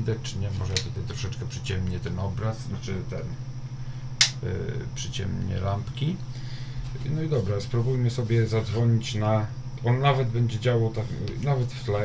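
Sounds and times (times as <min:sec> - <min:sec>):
steady low hum: 0:00.0 - 0:12.0
lamp switch click: 0:04.2 - 0:04.4.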